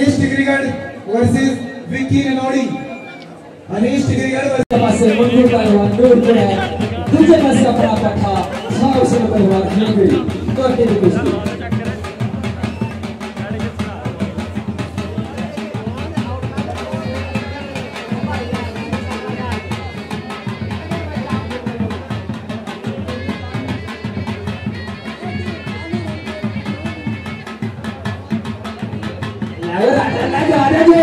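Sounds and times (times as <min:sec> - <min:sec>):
drums beaten in rapid rhythm: 0:00.0 - 0:02.9, 0:03.9 - 0:31.0
crowd voices: 0:00.0 - 0:31.0.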